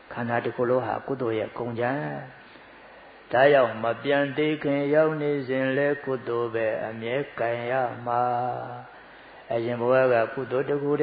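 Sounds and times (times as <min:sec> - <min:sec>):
man chanting: 0:00.1 - 0:02.4, 0:03.3 - 0:11.0.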